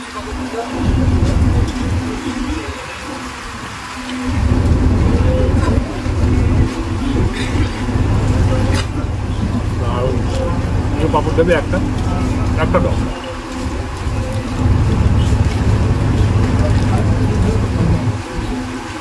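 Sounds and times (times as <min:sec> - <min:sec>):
background voices: 0:00.0 - 0:19.0
boat engine hum: 0:00.0 - 0:19.0
wind buffeting microphone: 0:00.2 - 0:19.0.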